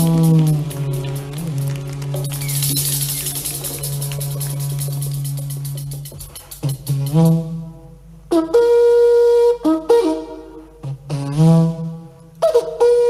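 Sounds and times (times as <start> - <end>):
band with rapid percussion: 0.0 - 7.5
conch shells blown: 0.0 - 13.0.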